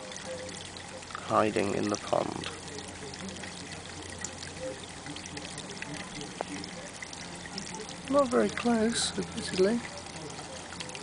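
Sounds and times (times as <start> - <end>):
low steady hum: 0.0 - 11.0
water trickling into pond: 0.0 - 11.0.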